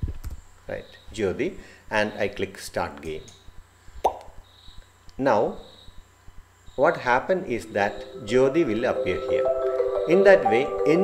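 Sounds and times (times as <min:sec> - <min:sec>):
faint steady hum: 0:00.0 - 0:11.0
man speaking: 0:06.9 - 0:11.0.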